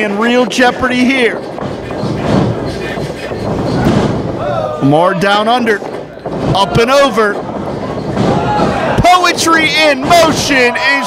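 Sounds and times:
rumble of running on ring boards: 0:00.0 - 0:11.0.

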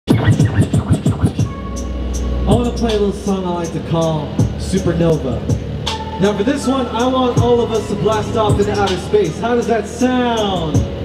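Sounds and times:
dj scratching a record: 0:00.1 - 0:01.6, 0:02.5 - 0:11.0
steady low bass tone: 0:00.1 - 0:11.0.

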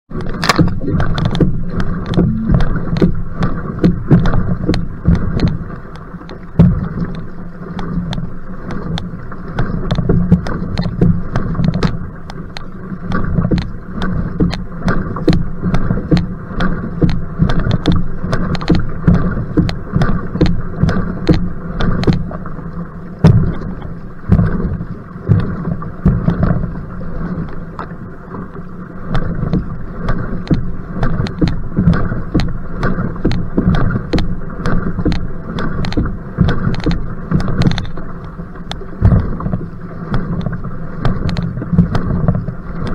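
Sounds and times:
paddle splashing through water: 0:00.1 - 0:42.9
rushing water: 0:00.1 - 0:42.9
wind on microphone: 0:00.3 - 0:05.8.

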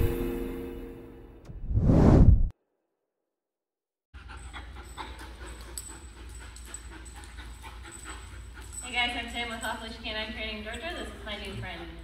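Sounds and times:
puppy panting: 0:04.2 - 0:11.8
woman's voice: 0:08.8 - 0:12.0.

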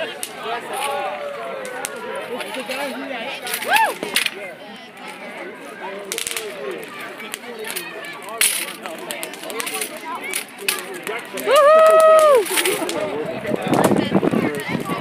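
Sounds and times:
people chattering: 0:00.0 - 0:15.0
firework spraying sparks: 0:06.1 - 0:06.6
sharp firework crackles: 0:06.1 - 0:06.6.

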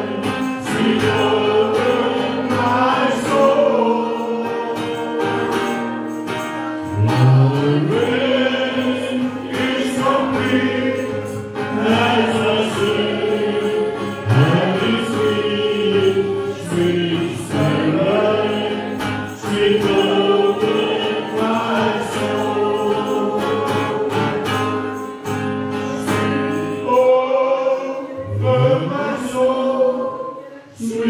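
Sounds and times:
instrumental accompaniment: 0:00.0 - 0:27.3
group singing worship song: 0:00.0 - 0:31.0.

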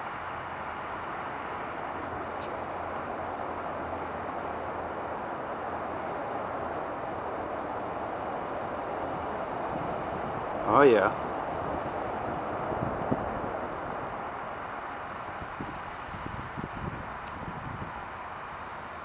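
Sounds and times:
distant jet engines rushing: 0:00.0 - 0:19.0.

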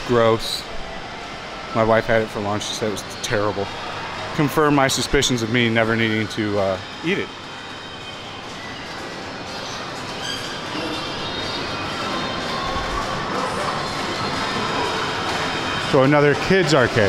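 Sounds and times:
distant chatter: 0:00.0 - 0:17.0.

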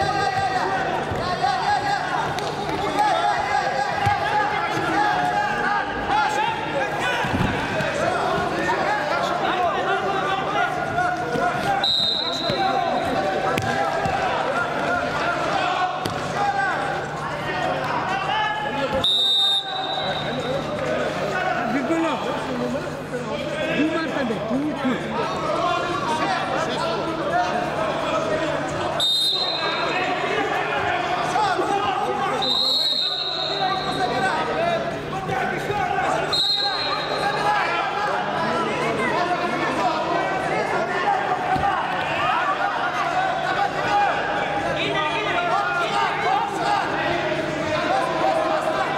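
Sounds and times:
voices shouting in sports hall: 0:00.0 - 0:48.9.

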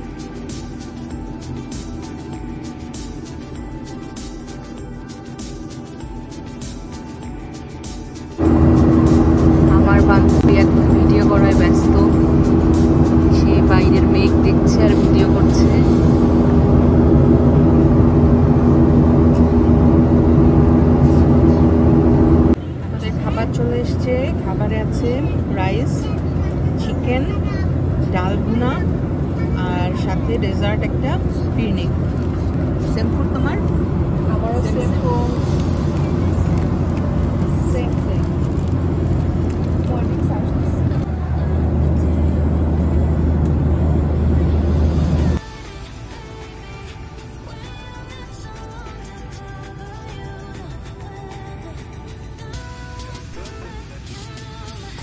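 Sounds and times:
airliner cabin engine drone: 0:00.0 - 0:55.0
constant low hum: 0:00.0 - 0:55.0.

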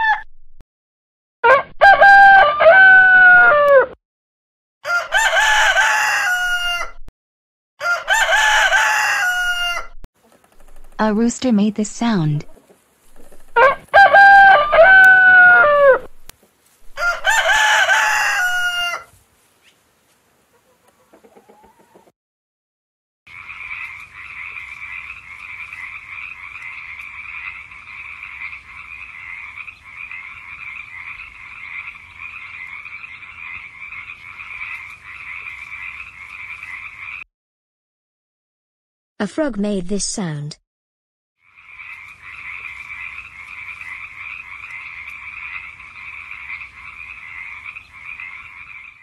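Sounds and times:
rooster crowing: 0:01.5 - 0:03.9, 0:04.8 - 0:07.0, 0:07.8 - 0:10.0, 0:13.6 - 0:16.1, 0:16.8 - 0:19.1
frog calling: 0:23.3 - 0:37.2, 0:41.4 - 0:49.0.

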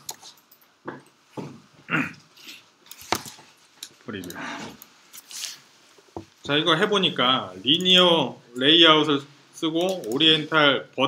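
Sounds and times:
person murmuring grunts: 0:01.9 - 0:02.2.

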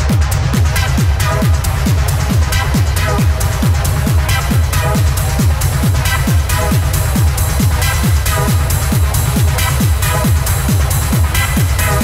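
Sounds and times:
techno kick drum: 0:00.0 - 0:12.0.

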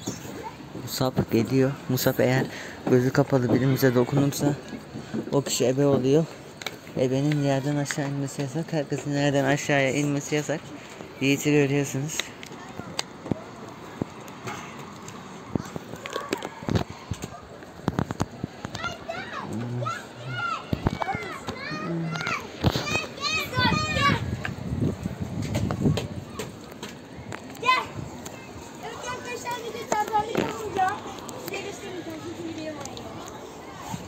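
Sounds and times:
children calling and shrieking: 0:00.0 - 0:00.8, 0:12.2 - 0:34.0
footsteps on a climbing frame: 0:12.1 - 0:31.8.

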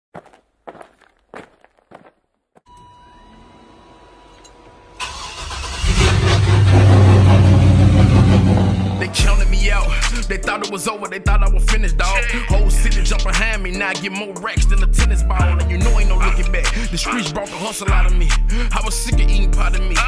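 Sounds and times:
music: 0:02.7 - 0:05.4, 0:08.0 - 0:20.0
car engine starting and running: 0:02.8 - 0:09.8.

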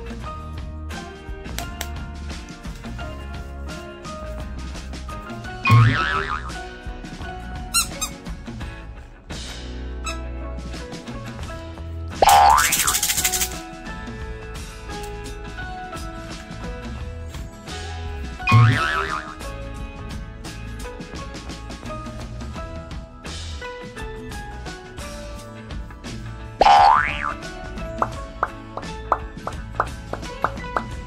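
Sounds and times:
background music: 0:00.0 - 0:31.0
cartoon boing: 0:05.7 - 0:06.7, 0:12.2 - 0:12.9, 0:18.5 - 0:19.5, 0:26.6 - 0:27.4
cartoon rising glide with rattle: 0:12.2 - 0:13.6.

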